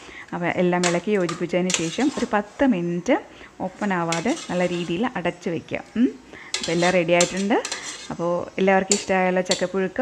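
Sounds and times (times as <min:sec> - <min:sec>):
woman talking: 0:00.3 - 0:10.0
hand mixing mashed food in a pot: 0:00.7 - 0:02.5, 0:03.8 - 0:05.2, 0:06.5 - 0:10.0.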